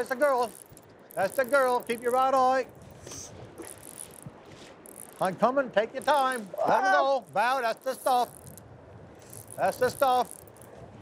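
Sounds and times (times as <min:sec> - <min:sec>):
fishing reel drag buzzing: 0:00.0 - 0:05.3, 0:07.5 - 0:10.8.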